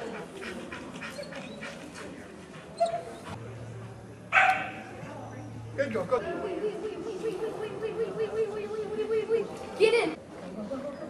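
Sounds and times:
low steady hum: 3.4 - 9.6
dog barking: 4.3 - 4.8.

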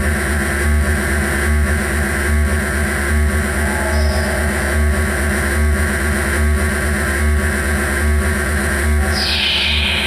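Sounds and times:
harsh synthesizer noise wash: 0.0 - 10.0.

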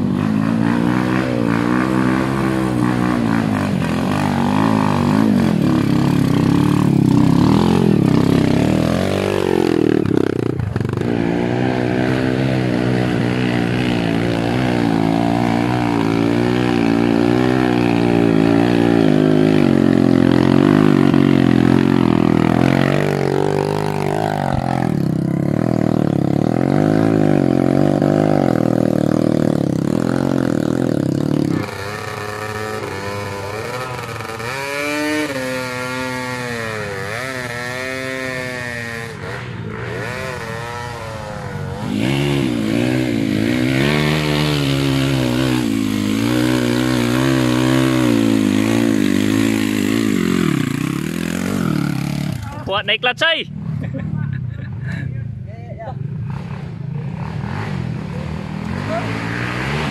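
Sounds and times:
dirt bike engine revving: 0.0 - 55.0, 56.0 - 59.9.

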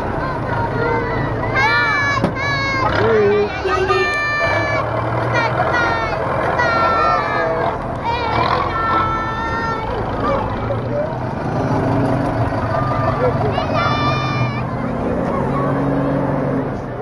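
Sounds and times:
children calling out: 0.0 - 16.5
minibus engines running: 0.0 - 17.0.

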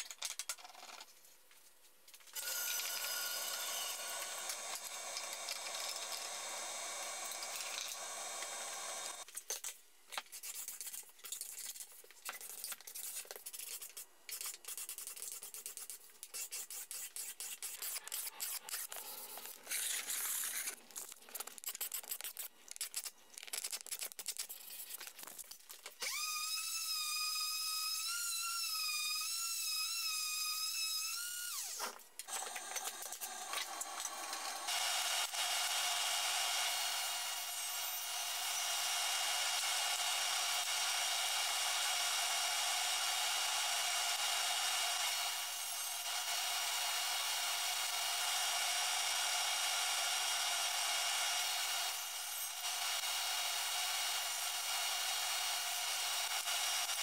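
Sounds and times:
high-pitched power tool: 2.4 - 9.3, 26.0 - 57.0
power tool whining: 2.4 - 9.3, 26.0 - 57.0.

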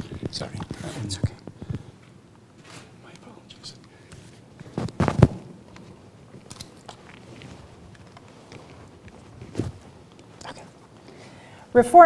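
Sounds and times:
microphone handling clicks and rubbing: 0.0 - 1.9, 4.1 - 10.6.

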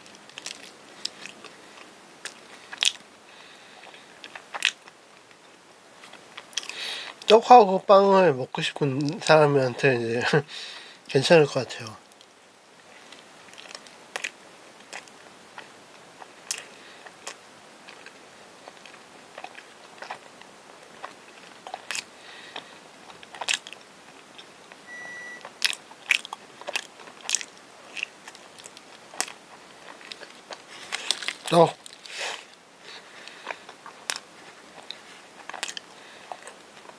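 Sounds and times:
close chewing of soft bread: 0.0 - 7.4, 8.8 - 11.1, 12.0 - 36.9
wet mouth clicks and smacks: 35.5 - 35.8.

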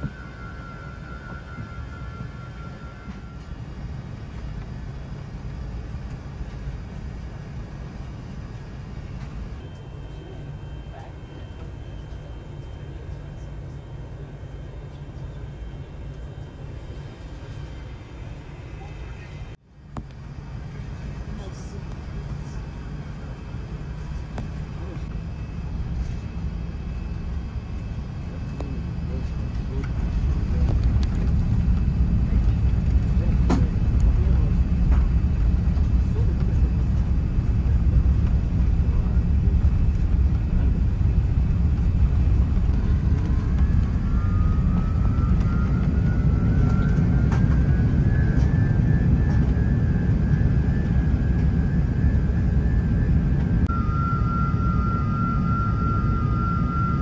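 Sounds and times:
jet engines at takeoff thrust: 0.0 - 57.0
runway rumble: 0.0 - 57.0
whine rising in pitch: 0.0 - 57.0
steady tone: 20.3 - 57.0.

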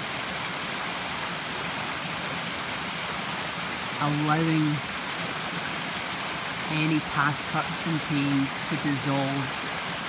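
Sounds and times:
stream rushing: 0.0 - 10.0.

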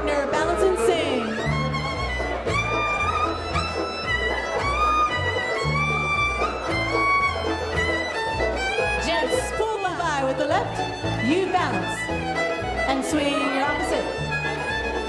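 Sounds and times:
fiddle melody: 0.0 - 15.0
strummed strings: 0.0 - 15.0
upright bass notes: 0.0 - 15.0.

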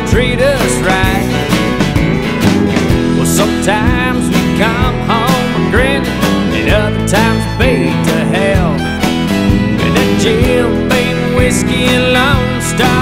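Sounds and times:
country band playing: 0.0 - 13.0.

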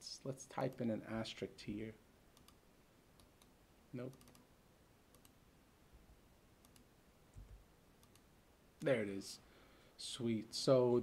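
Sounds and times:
person speaking: 0.0 - 2.0, 8.8 - 9.4
keyboard and mouse clicks: 2.4 - 2.6, 3.2 - 4.5, 5.1 - 5.4, 6.6 - 8.9.

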